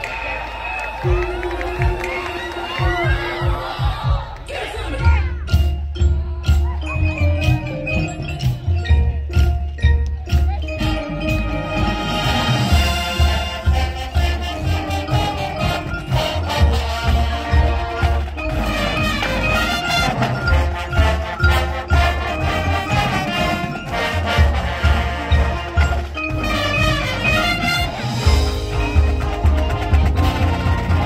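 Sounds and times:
marching band playing rock: 0:00.0 - 0:31.0
steady drum beat: 0:00.9 - 0:31.0.

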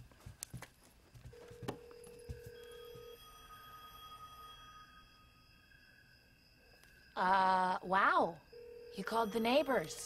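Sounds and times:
low telephone line tone: 0:01.3 - 0:10.0.

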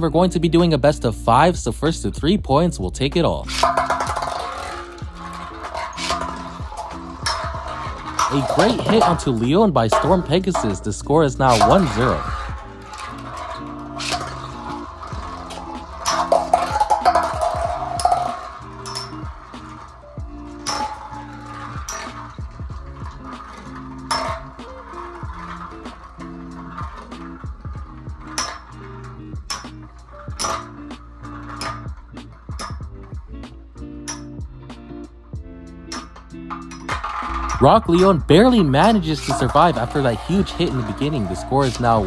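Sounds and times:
background music with steady beat: 0:00.0 - 0:42.0
spinning tops clinking together: 0:03.4 - 0:34.6, 0:35.2 - 0:42.0.

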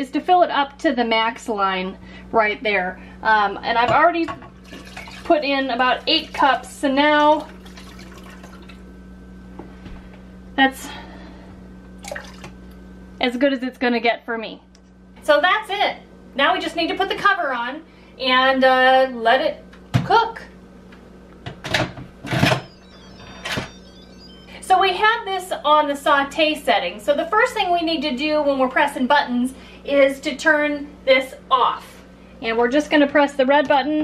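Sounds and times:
steady low hum: 0:00.0 - 0:33.0.

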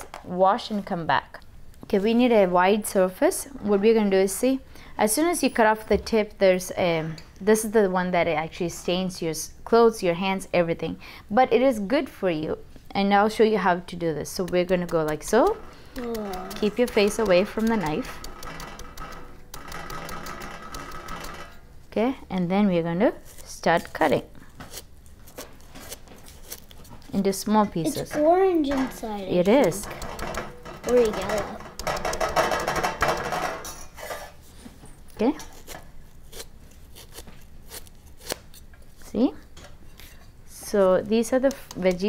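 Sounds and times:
knife chopping on board: 0:14.3 - 0:18.9
knife cutting crunchy layers: 0:35.5 - 0:38.7.

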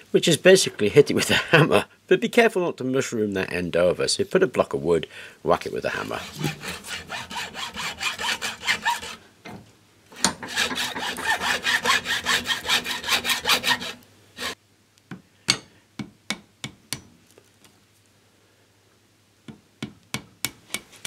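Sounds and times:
hacksaw cutting metal: 0:06.0 - 0:09.2, 0:10.2 - 0:14.6.

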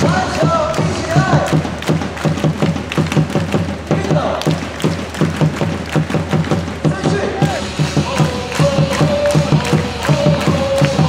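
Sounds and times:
music with fast drum beat: 0:00.0 - 0:11.0
crowd voices: 0:06.7 - 0:11.0.

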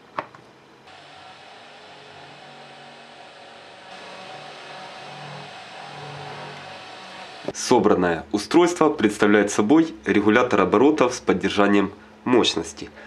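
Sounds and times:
steady hiss: 0:00.9 - 0:07.8.

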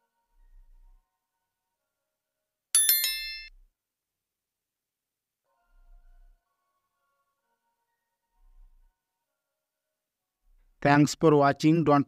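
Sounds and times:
bright metallic ding: 0:02.8 - 0:03.5.

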